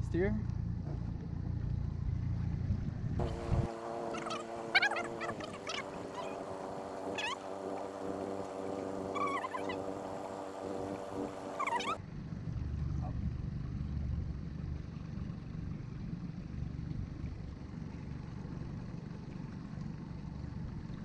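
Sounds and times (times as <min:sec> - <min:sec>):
outboard motor humming: 0:00.5 - 0:21.0
short high squeals: 0:03.2 - 0:12.0.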